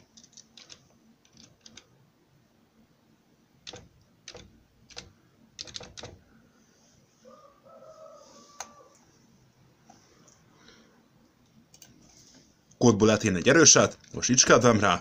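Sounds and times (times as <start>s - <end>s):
keyboard keystrokes: 0.2s - 1.9s, 3.6s - 6.2s.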